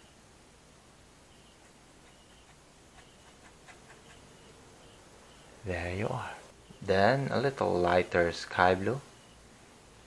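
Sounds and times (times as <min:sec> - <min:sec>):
paintbrush scratching on canvas: 0:01.5 - 0:04.3.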